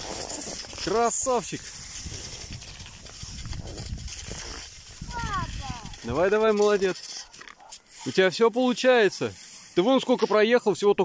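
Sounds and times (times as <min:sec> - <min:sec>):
footsteps and skis on snow: 0:00.0 - 0:11.0
wind rumble on microphone: 0:01.6 - 0:06.3.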